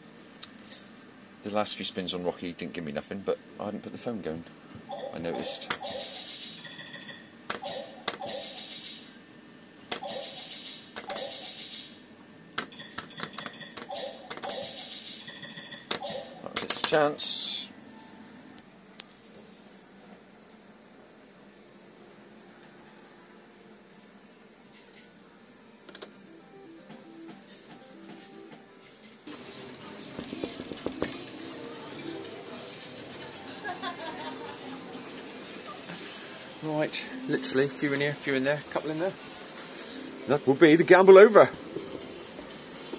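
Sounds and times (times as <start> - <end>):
arcade hubbub with voices: 1.4 - 9.0, 29.4 - 41.9.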